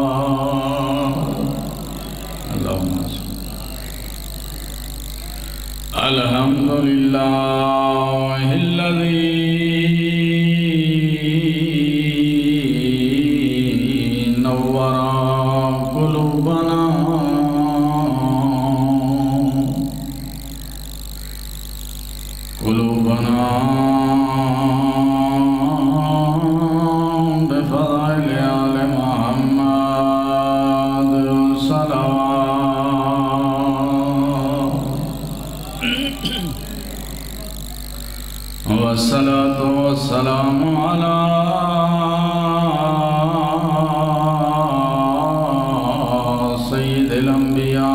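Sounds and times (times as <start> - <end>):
man chanting melodic recitation: 0.0 - 5.2, 5.9 - 20.8, 22.5 - 47.9.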